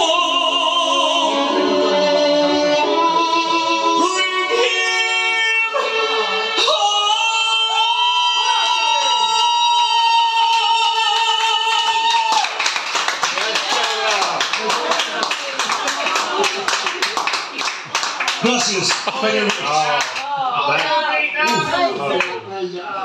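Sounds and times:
song with long held note: 0.0s - 8.4s
audience clapping: 10.4s - 21.1s, 22.1s - 22.4s.

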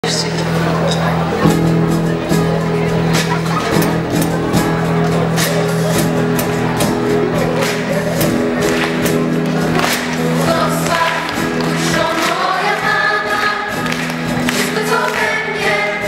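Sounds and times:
band with guitar violins and keyboard: 0.0s - 16.0s
choir singing: 9.7s - 16.0s.

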